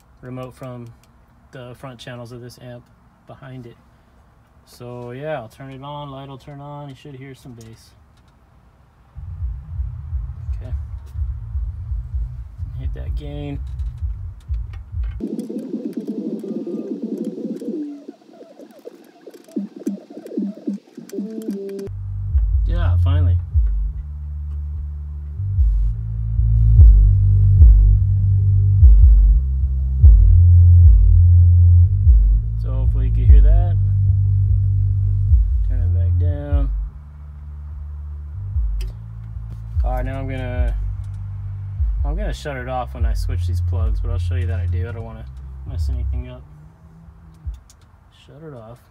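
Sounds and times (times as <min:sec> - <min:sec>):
subwoofer playing bass line: 0:09.2 - 0:16.9, 0:19.4 - 0:46.4
music from car stereo: 0:18.7 - 0:24.0, 0:24.6 - 0:29.4, 0:38.6 - 0:44.8.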